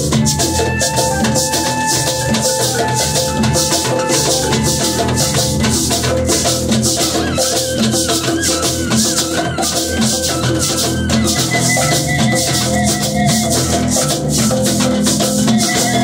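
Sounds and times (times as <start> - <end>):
hand shaker rhythm: 0.0 - 16.0
held pitched instrument notes: 0.0 - 16.0.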